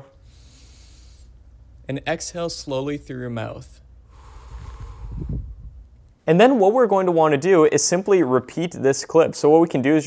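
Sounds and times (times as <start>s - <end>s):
slow breath out through mouth: 0.2s - 1.4s, 4.1s - 5.7s
low rumble: 3.8s - 6.2s.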